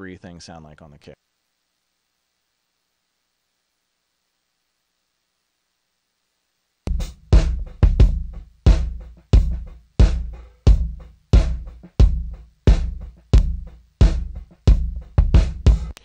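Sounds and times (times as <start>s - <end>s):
kick drum hits: 6.9s - 15.9s.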